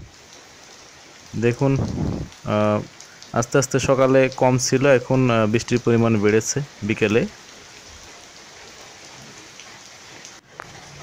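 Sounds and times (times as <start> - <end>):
rain falling on grass: 0.0 - 11.0.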